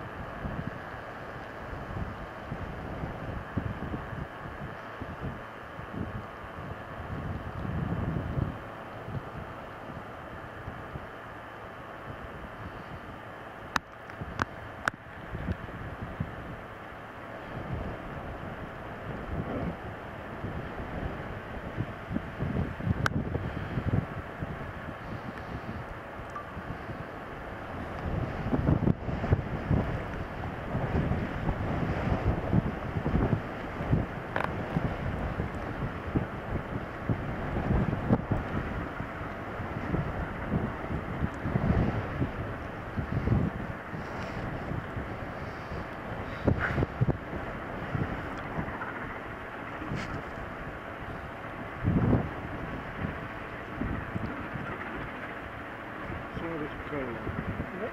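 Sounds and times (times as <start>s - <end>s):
gusty wind on microphone: 0.0s - 57.9s
steam locomotive working hard: 16.4s - 57.9s.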